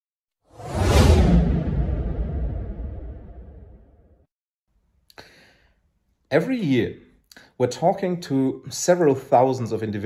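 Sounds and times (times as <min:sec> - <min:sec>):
whoosh: 0:00.5 - 0:04.1
deep rumble: 0:00.6 - 0:04.0.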